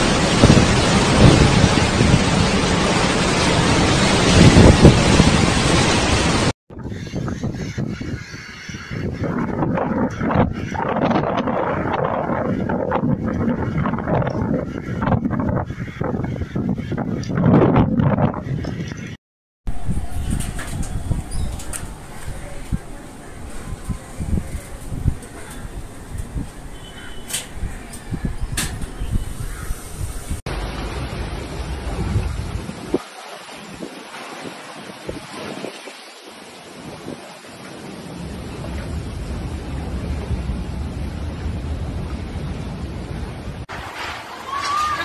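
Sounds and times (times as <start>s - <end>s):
wind buffeting microphone: 0.0s - 30.5s, 31.2s - 36.0s
storm wind with driving rain: 0.0s - 45.0s.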